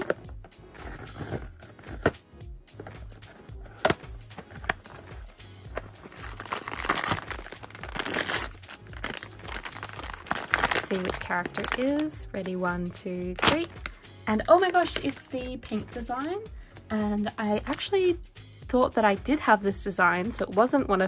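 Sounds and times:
background music with low beat: 0.0 - 21.0
plastic bag crinkling: 5.8 - 12.1.

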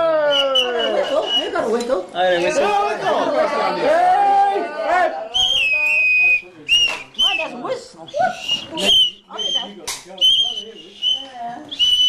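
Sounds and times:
toy whistle tooting: 8.4 - 12.0.

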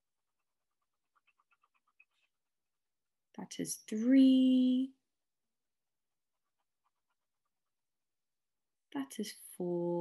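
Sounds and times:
pen scribbling strokes: 0.0 - 3.0, 5.8 - 8.2.

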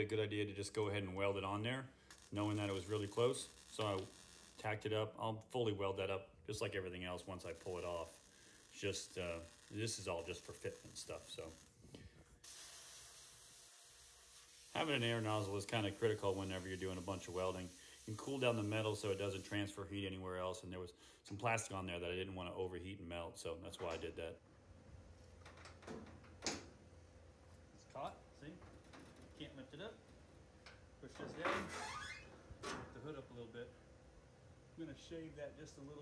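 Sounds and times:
air nozzle hissing: 7.6 - 19.7.

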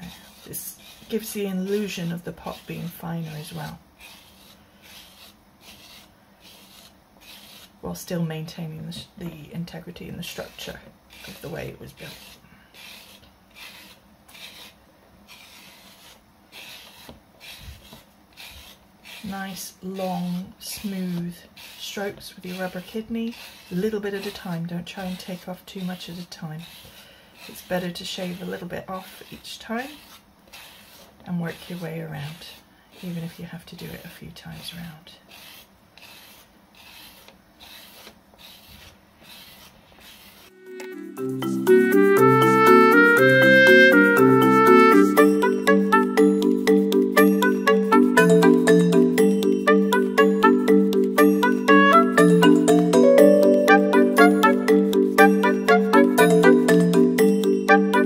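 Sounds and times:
tool scraping clay: 0.0 - 40.6
music with mallet notes: 40.6 - 58.0.

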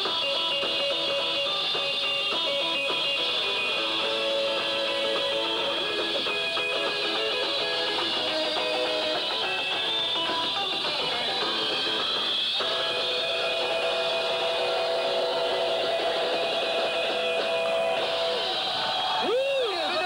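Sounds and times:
electric guitar long held notes: 0.0 - 20.0
rock band playing: 0.0 - 20.0
man's voice: 19.2 - 20.0.

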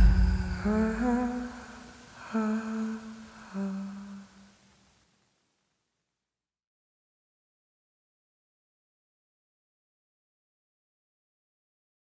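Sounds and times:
voice humming low notes: 0.0 - 2.8.

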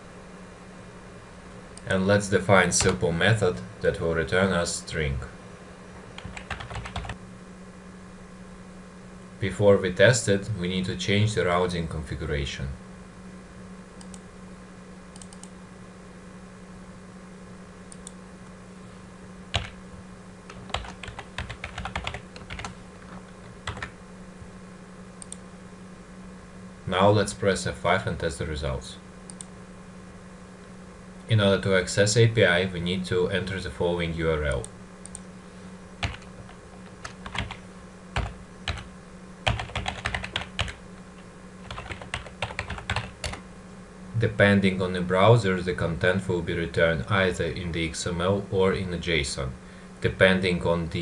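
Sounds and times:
typing on keyboard: 6.2 - 7.2, 19.6 - 19.8, 20.5 - 22.7, 23.6 - 23.9, 37.0 - 37.6, 38.2 - 40.8, 41.7 - 43.4.

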